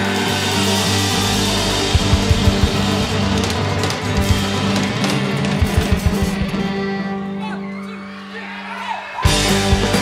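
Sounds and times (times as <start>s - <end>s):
bass notes: 0.0s - 7.4s, 9.3s - 10.0s
fiddle: 0.0s - 8.2s
guitar: 0.0s - 10.0s
drum hits: 1.0s - 6.7s.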